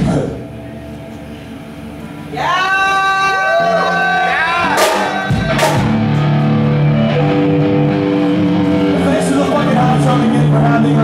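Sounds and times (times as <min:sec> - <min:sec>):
metal band playing: 0:00.0 - 0:11.0.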